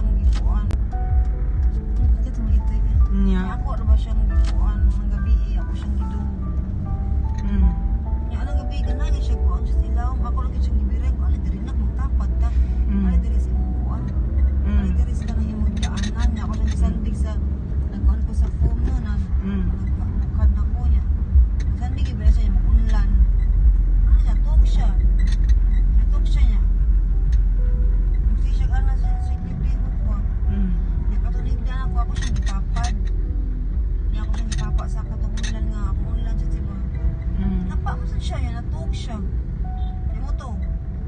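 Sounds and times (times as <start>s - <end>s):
car engine and road noise: 0.0s - 41.0s.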